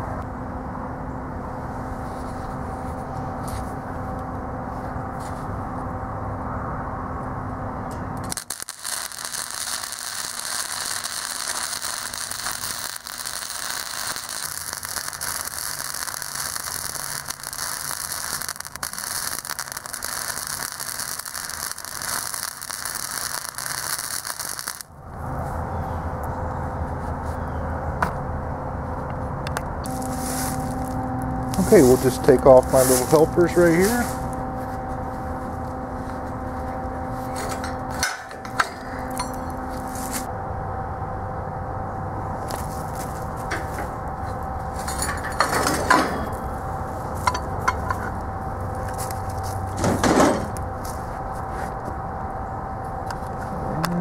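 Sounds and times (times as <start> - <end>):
steady low hum: 0.0 - 54.0
welding arc crackle: 8.2 - 24.9, 29.8 - 34.4.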